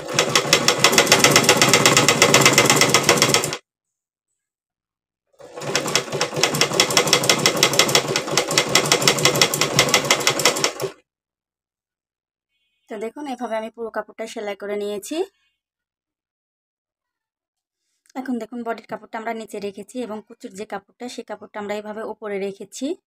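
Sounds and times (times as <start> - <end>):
sewing machine stitching: 0.0 - 3.6, 5.4 - 11.0.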